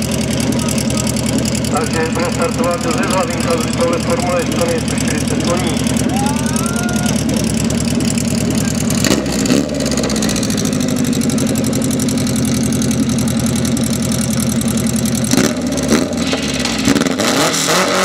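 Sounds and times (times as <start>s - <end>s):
racing car engine revving: 0.0s - 12.0s, 15.2s - 18.0s.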